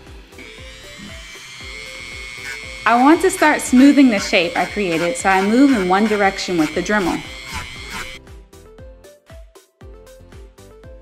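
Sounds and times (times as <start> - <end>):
rotary tool high whine: 0.0 - 8.2
background music with steady beat: 0.0 - 11.0.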